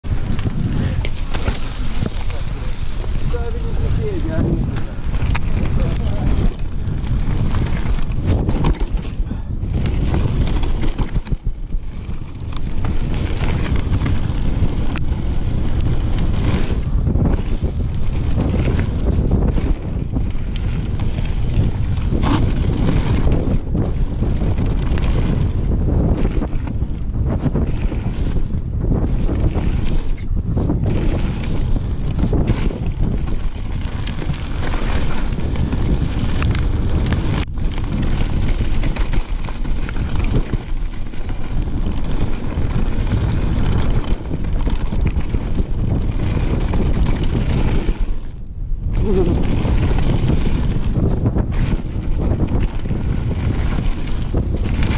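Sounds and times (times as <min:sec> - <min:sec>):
tyres on gravel: 0:00.0 - 0:23.6, 0:29.2 - 0:54.9
bike knocks and rattles: 0:00.0 - 0:54.9
wind buffeting microphone: 0:00.0 - 0:54.9.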